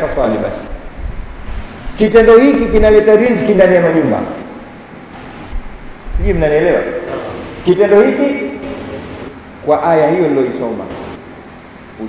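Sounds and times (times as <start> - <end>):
man speaking over a microphone: 2.0 - 4.4, 6.1 - 9.0.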